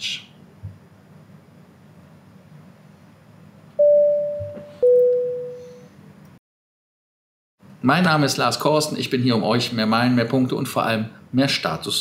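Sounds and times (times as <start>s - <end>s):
two-note electronic chime: 3.8s - 5.8s.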